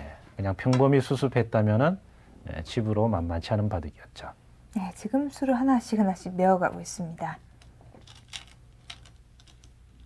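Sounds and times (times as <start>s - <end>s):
low steady hum: 0.0s - 10.0s
stones clicking in wooden bowls: 7.6s - 10.0s.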